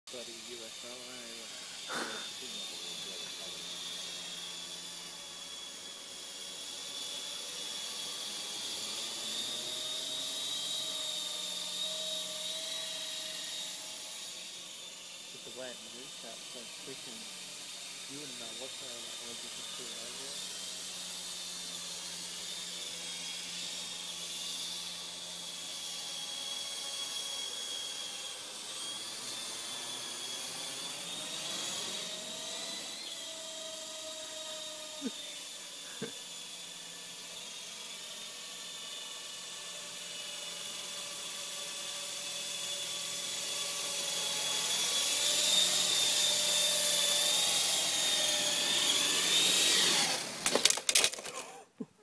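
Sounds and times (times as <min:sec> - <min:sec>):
rc helicopter rotor whine: 0:00.1 - 0:52.0.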